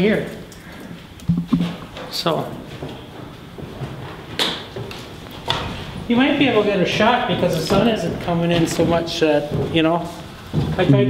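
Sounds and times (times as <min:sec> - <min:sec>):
low room noise: 0:00.0 - 0:11.0
sharp knocks: 0:01.2 - 0:01.9.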